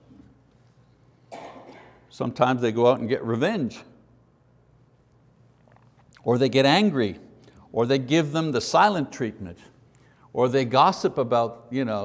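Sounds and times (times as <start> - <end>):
man coughing softly: 1.3 - 2.1.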